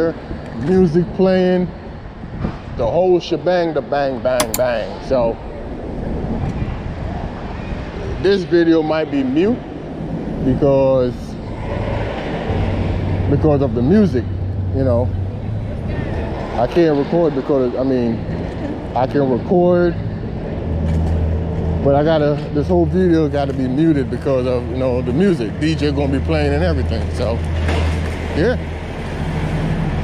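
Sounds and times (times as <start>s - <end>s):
city street traffic: 0.0s - 30.0s.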